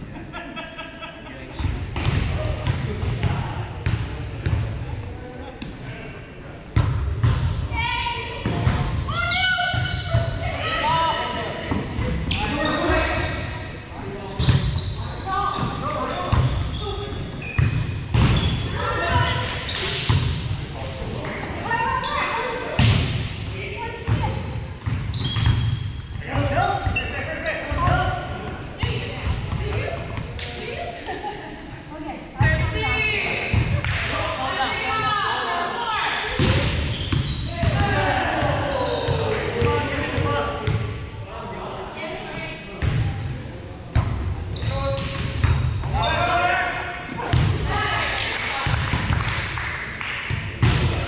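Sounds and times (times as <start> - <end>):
players calling and chatting: 0.0 - 51.0.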